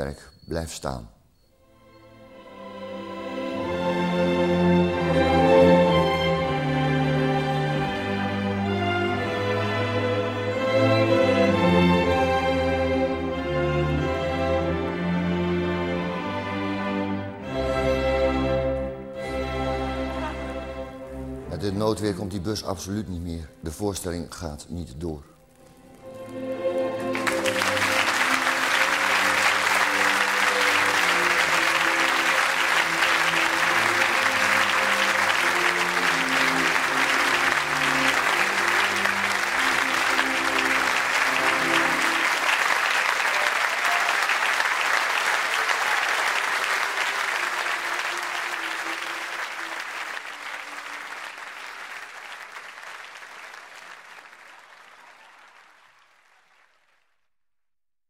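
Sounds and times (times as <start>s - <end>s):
music closing chords: 25.6s - 43.2s
audience applauding: 25.6s - 57.3s.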